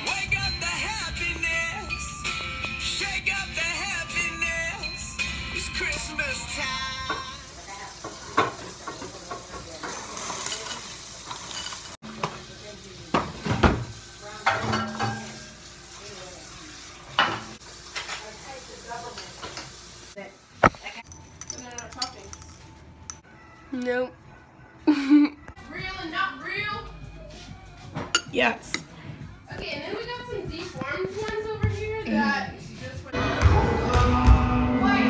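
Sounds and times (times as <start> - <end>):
dishes and spoon clinking: 8.4 - 12.0, 14.4 - 15.5, 20.9 - 23.2, 28.0 - 28.9.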